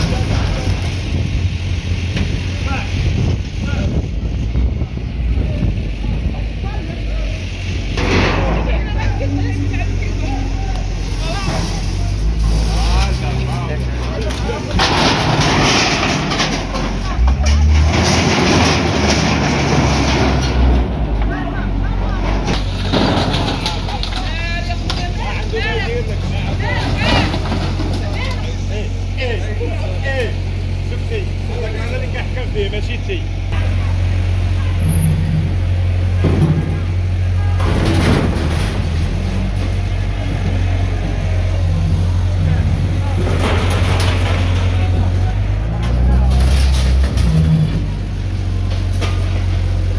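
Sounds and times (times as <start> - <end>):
wood metal and brick crashing: 0.0 - 1.3, 11.2 - 29.4, 36.0 - 49.9
diesel engine running: 0.0 - 49.9
voices talking: 0.0 - 49.9.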